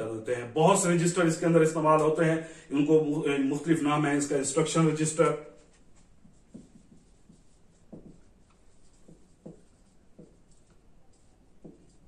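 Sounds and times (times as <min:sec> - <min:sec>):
faint handwriting strokes: 0:05.4 - 0:12.0.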